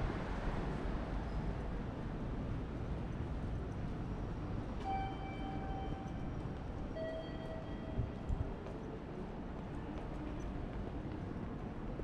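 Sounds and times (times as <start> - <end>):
hum of busy station concourse: 0.0 - 12.0.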